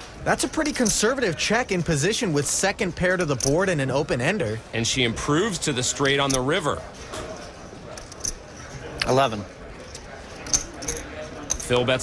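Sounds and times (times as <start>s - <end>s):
faint background murmur: 0.0s - 12.0s.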